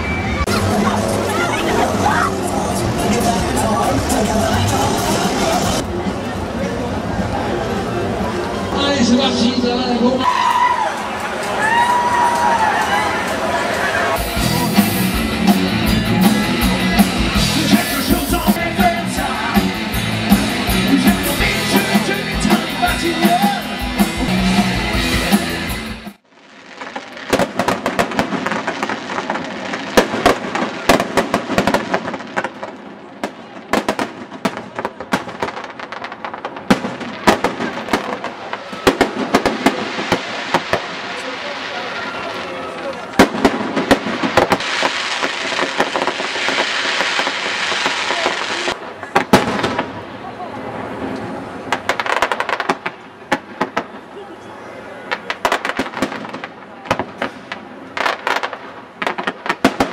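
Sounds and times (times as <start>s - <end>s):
fireworks bangs and crackles: 0.0s - 7.4s, 11.0s - 25.5s, 26.1s - 59.9s.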